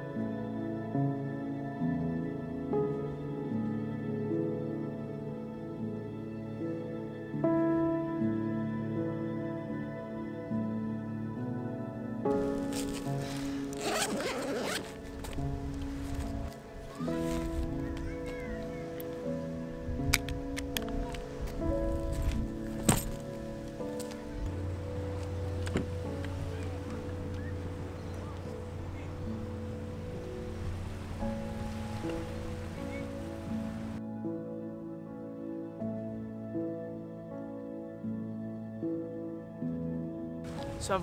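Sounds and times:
slow sustained background music: 0:00.0 - 0:41.0
zipper-like rasp: 0:13.7 - 0:15.0.

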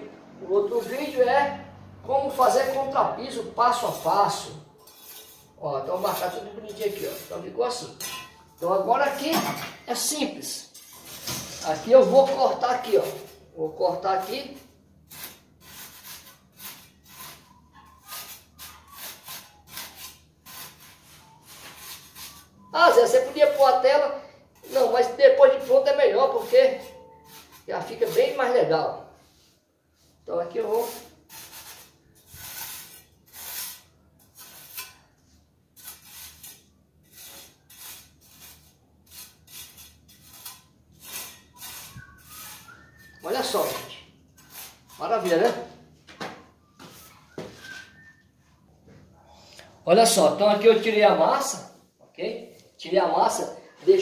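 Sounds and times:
trowel scraping through screed: 0:00.6 - 0:01.3, 0:02.3 - 0:09.8, 0:10.7 - 0:28.6, 0:30.6 - 0:45.8.

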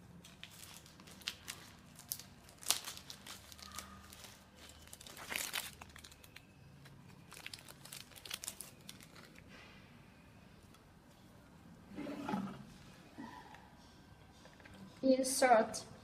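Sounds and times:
plastic bag crinkling: 0:00.2 - 0:09.5.

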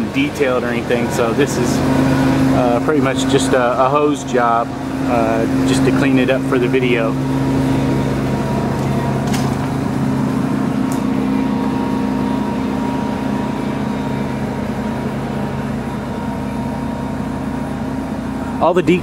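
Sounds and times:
machinery humming: 0:00.0 - 0:19.0.

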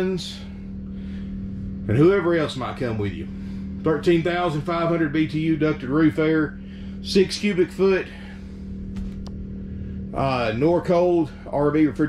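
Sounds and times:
generator humming: 0:00.0 - 0:12.0.

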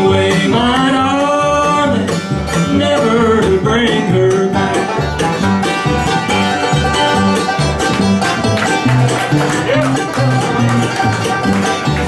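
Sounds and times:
acoustic guitar: 0:00.0 - 0:12.0
banjo: 0:00.0 - 0:12.0
mandolin: 0:00.0 - 0:12.0
upright bass plucking: 0:00.0 - 0:12.0.

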